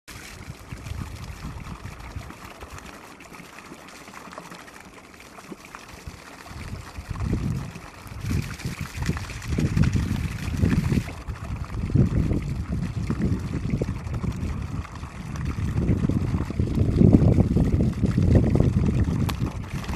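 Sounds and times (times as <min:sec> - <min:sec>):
wind buffeting microphone: 0:00.4 - 0:02.4, 0:06.5 - 0:19.9.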